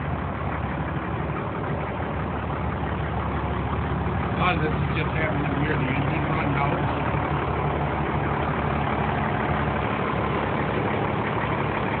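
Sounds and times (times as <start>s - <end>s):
fire truck engine idling: 0.0s - 12.0s.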